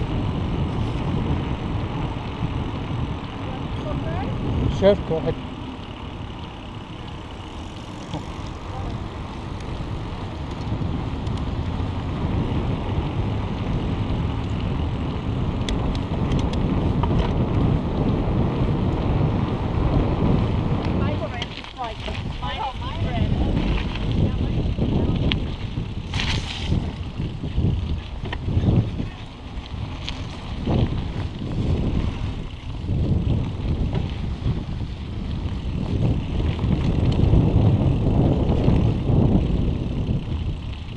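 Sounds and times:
wind buffeting microphone: 0.0 - 40.9.

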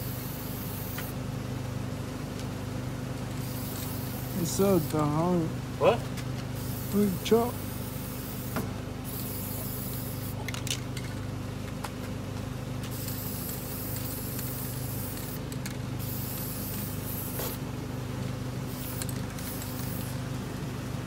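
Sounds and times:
spray-paint can hissing: 0.0 - 1.1, 3.4 - 5.0, 6.6 - 10.7, 12.9 - 17.6, 18.7 - 20.2
steady low hum: 0.0 - 21.0.

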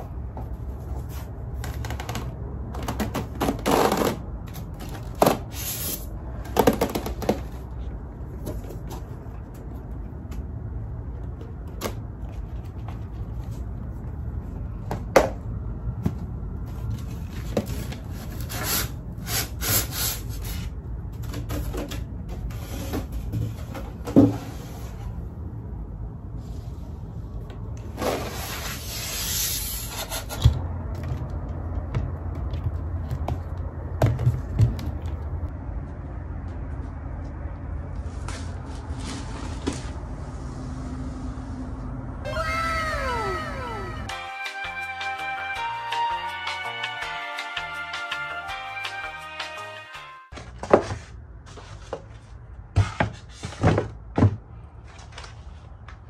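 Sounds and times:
meow-like cries: 42.3 - 44.2
background music with a beat: 44.1 - 50.2.

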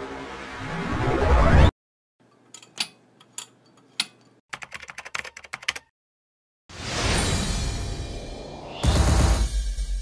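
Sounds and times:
computer keyboard typing clicks: 4.6 - 5.9.

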